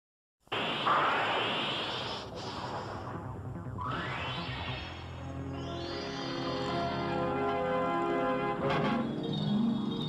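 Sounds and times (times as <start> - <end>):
loud whoosh of noise: 0.5 - 5.2.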